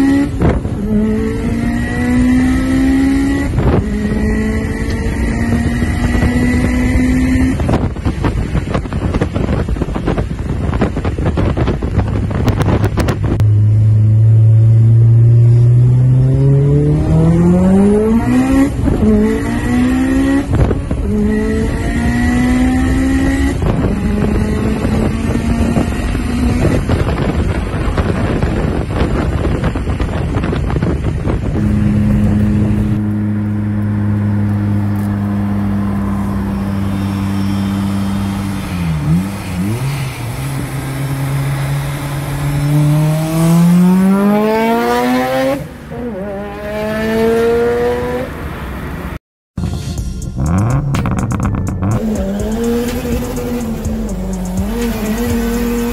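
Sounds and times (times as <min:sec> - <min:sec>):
car engine accelerating: 0:00.0 - 0:49.2, 0:50.2 - 0:55.9
car engine droning: 0:00.0 - 0:55.9.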